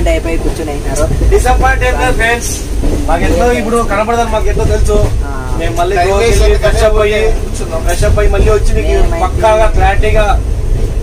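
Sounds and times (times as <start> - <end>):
train coach rumbling: 0.0 - 11.0
men talking: 0.9 - 10.5.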